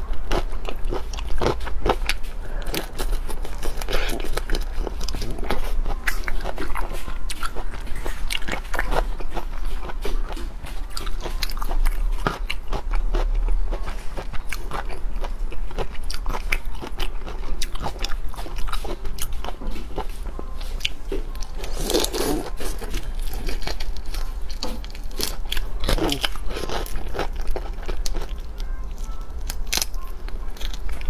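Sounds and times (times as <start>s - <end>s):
steady low hum: 0.0s - 31.0s
prawn shell crunching: 0.1s - 31.0s.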